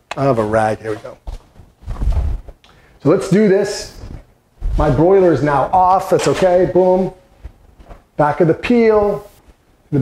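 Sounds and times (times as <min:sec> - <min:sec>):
footsteps: 0:00.4 - 0:02.6, 0:03.8 - 0:08.2
muffled thuds of camera carried: 0:01.3 - 0:02.6.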